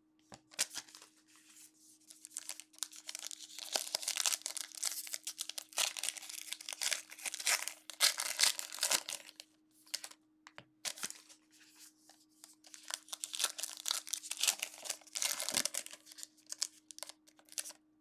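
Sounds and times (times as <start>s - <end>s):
foil pack tearing and crinkling: 2.2s - 10.1s, 12.7s - 17.7s.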